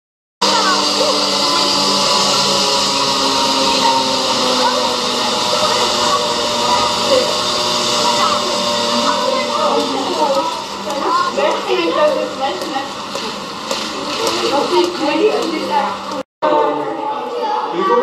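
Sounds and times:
children's voices and chatter: 0:00.4 - 0:18.0.

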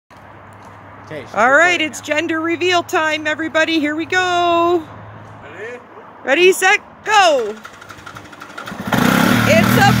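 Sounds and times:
voices calling out: 0:01.1 - 0:08.4
atv engine revving: 0:07.3 - 0:10.0.

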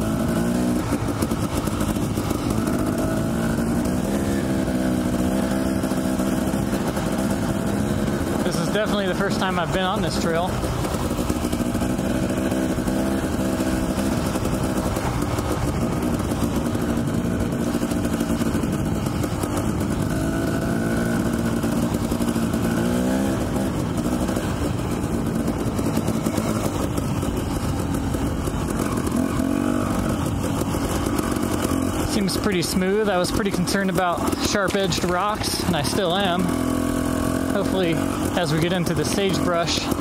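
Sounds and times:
dirt bike engine running: 0:00.0 - 0:40.0
wind: 0:00.0 - 0:40.0.

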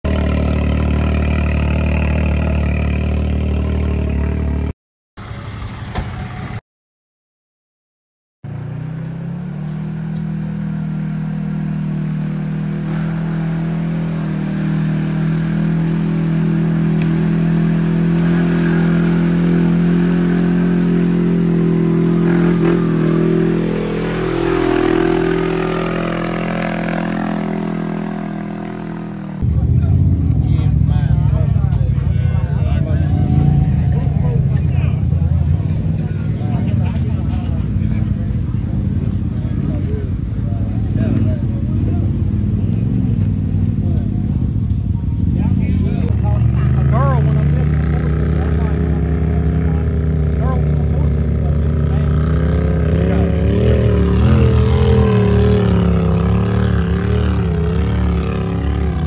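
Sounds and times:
rough engine rumble: 0:08.4 - 0:59.0
off-road vehicle engine passing: 0:08.5 - 0:59.0.

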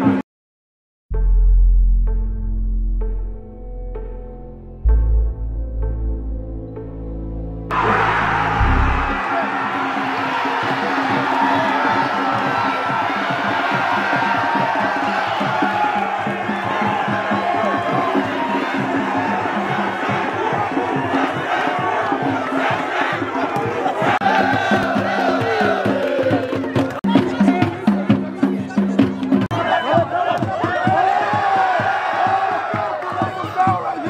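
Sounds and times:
music playing: 0:01.1 - 0:29.5
crowd cheering and chanting: 0:06.8 - 0:34.0.

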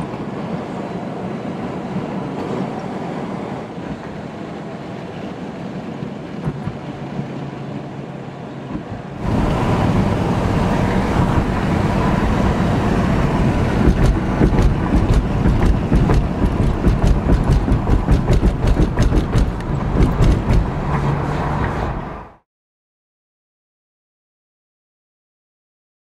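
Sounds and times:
car road and wind noise: 0:00.0 - 0:22.4
sharp crackles and rattles: 0:13.6 - 0:21.9.

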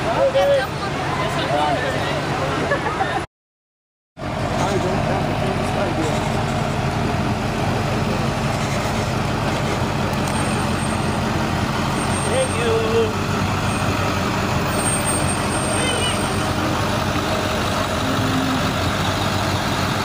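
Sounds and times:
truck engine rumbling: 0:04.2 - 0:20.0
people talking: 0:04.6 - 0:06.6, 0:12.2 - 0:13.2, 0:15.3 - 0:17.0.

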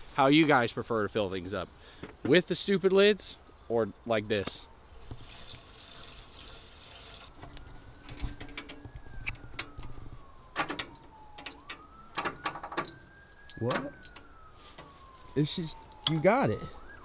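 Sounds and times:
faint siren wailing: 0:04.0 - 0:05.2, 0:06.2 - 0:17.0.

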